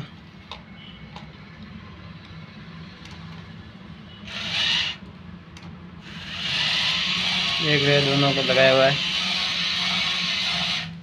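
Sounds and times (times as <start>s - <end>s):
small gear motor whirring: 4.2s - 5.0s, 6.0s - 11.0s.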